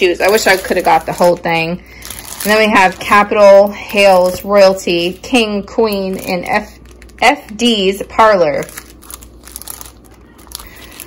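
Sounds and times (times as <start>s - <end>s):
plastic sleeve crinkling: 0.0s - 11.0s.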